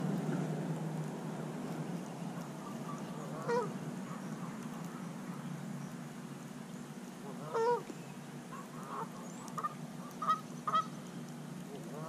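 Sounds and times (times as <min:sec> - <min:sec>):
geese honking: 0:02.6 - 0:05.0, 0:07.3 - 0:07.9, 0:08.5 - 0:11.0, 0:11.8 - 0:12.0.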